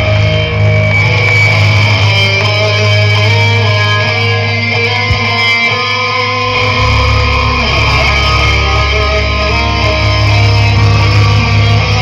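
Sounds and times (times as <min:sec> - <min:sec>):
bass: 0:00.0 - 0:12.0
distorted electric guitars: 0:00.0 - 0:12.0
drums: 0:00.0 - 0:12.0.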